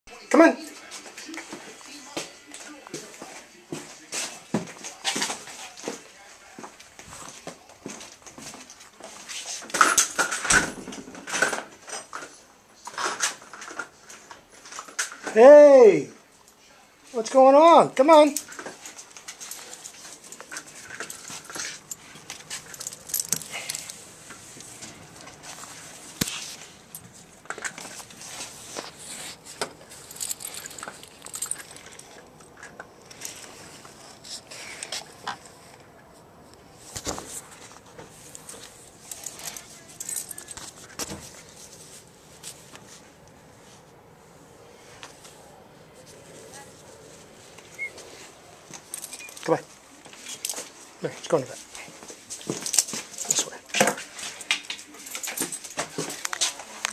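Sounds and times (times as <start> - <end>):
dog chain collar jingling: 18.1 - 24.0, 29.8 - 34.2, 48.7 - 49.6, 52.4 - 56.1
dog whining softly: 47.7 - 48.3.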